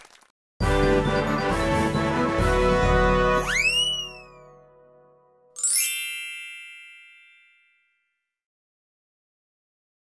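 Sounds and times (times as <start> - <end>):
bright chime: 5.6 - 8.3.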